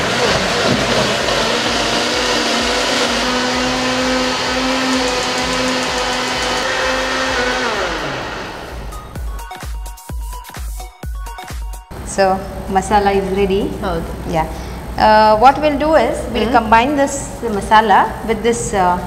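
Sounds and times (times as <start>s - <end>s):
mixer grinder motor whining: 0.0s - 9.4s.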